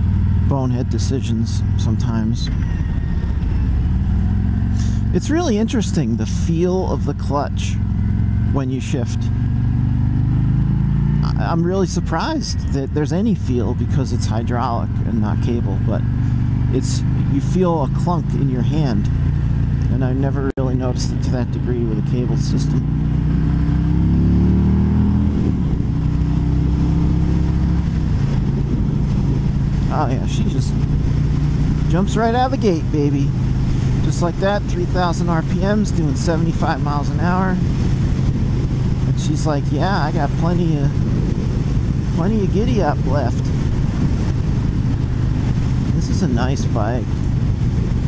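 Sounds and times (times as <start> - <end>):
motorcycle engine under throttle: 0.0 - 48.0
wind noise on microphone: 15.9 - 48.0.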